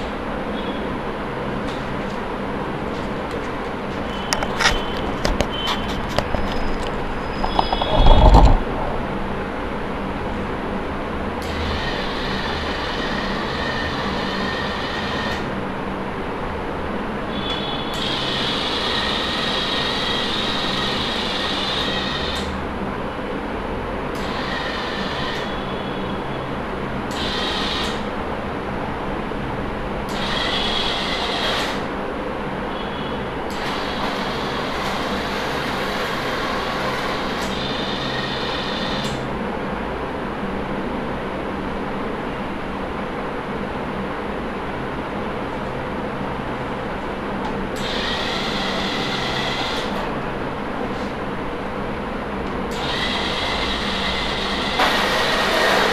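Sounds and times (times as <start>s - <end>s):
low hum: 6.6s - 10.5s.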